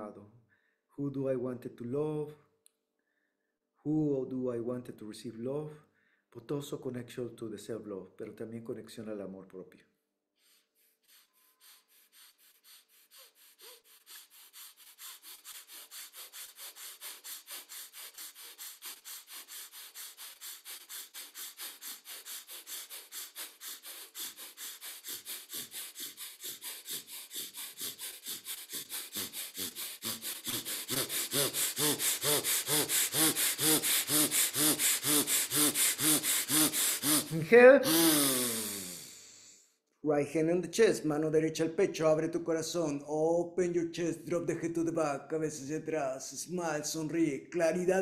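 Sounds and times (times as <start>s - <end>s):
rapid forceful nostril breathing: 10.4s - 39.8s.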